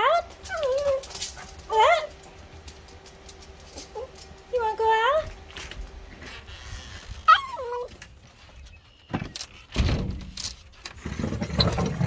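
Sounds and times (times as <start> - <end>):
dog whining: 0.0 - 2.2, 6.8 - 8.2.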